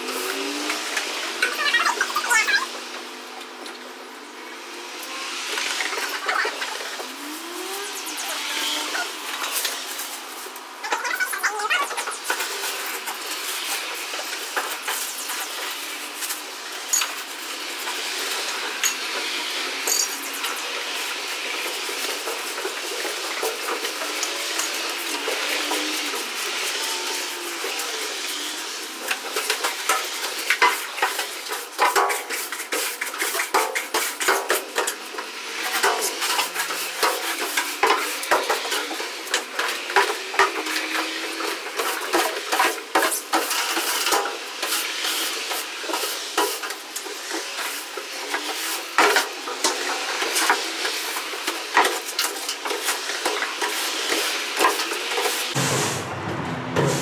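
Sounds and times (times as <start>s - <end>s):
tools scraping wooden floor: 35.6s - 55.6s.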